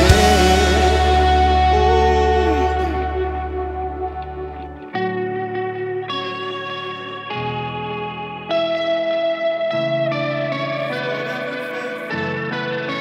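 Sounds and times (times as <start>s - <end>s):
electric guitar through effects: 0.0s - 13.0s
sustained chords: 0.0s - 13.0s.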